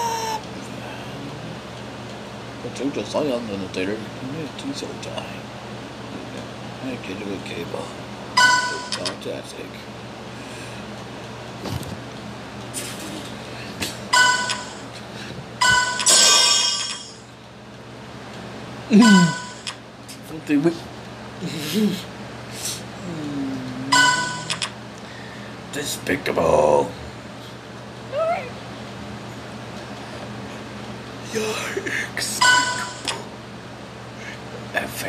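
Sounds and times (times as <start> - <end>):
faint hum: 0.0 - 35.0.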